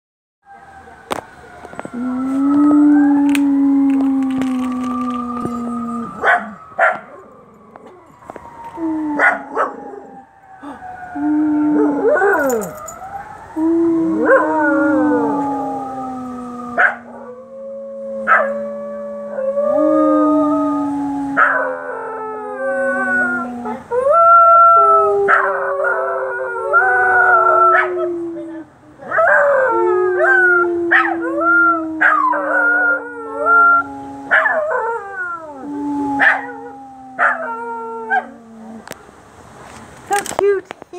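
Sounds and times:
siren: 0:00.4 - 0:23.6
dogs howling: 0:01.1 - 0:39.0
dogs yipping: 0:06.2 - 0:07.2.

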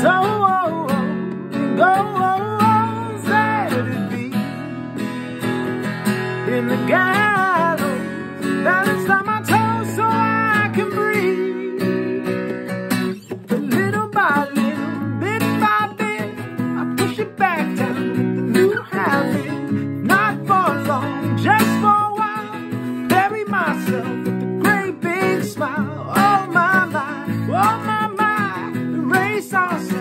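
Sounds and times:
acoustic guitar: 0:00.0 - 0:30.0
man singing: 0:00.0 - 0:30.0.

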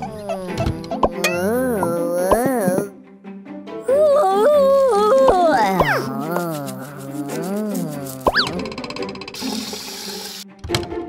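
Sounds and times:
cartoon falling slide: 0:00.0 - 0:02.9, 0:04.1 - 0:08.8
light background music: 0:00.0 - 0:11.0
short burst of hiss: 0:09.4 - 0:10.4.

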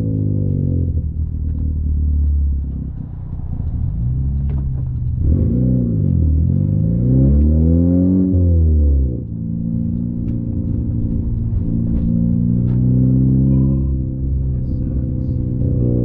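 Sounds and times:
car engine revving through gears: 0:00.0 - 0:16.0.

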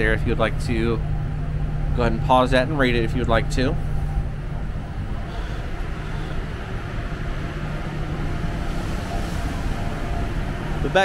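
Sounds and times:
ship machinery rumble: 0:00.0 - 0:11.0
ventilation hum: 0:00.0 - 0:11.0.

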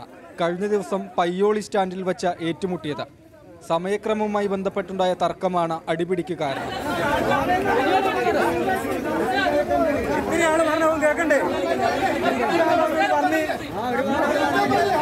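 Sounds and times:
crowd of men arguing: 0:00.0 - 0:05.3, 0:06.0 - 0:15.0.

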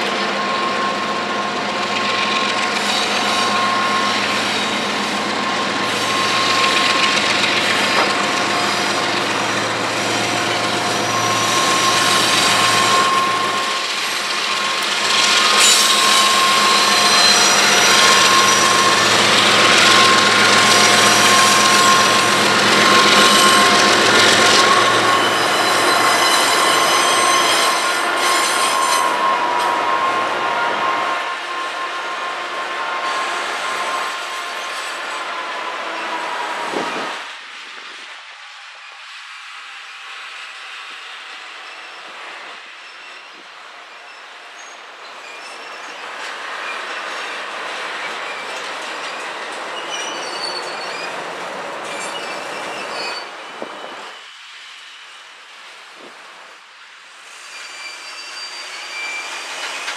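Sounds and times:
wheel squeals: 0:00.0 - 0:31.9, 0:41.6 - 0:54.4, 0:57.3 - 0:59.9
diesel locomotive engine: 0:00.0 - 0:59.9
train wheel noise: 0:00.0 - 0:59.9.

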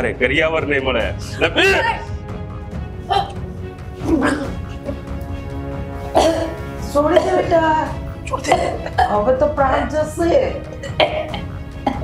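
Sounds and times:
dramatic music with held tones: 0:00.0 - 0:12.0
vocal cry: 0:04.0 - 0:04.9.

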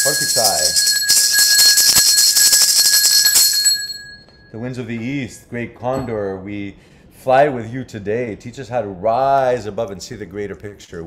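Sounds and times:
bell-like ring: 0:00.0 - 0:04.6.

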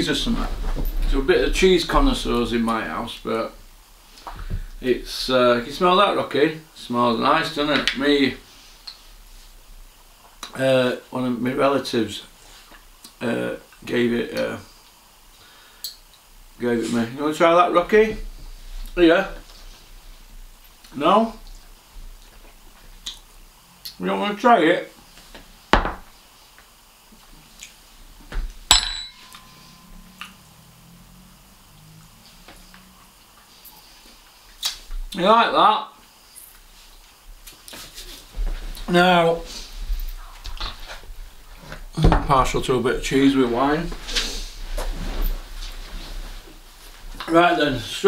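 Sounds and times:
cushions and clothing rustling: 0:00.0 - 0:03.0, 0:36.6 - 0:48.0
fork clinking glass jar: 0:28.7 - 0:29.7.

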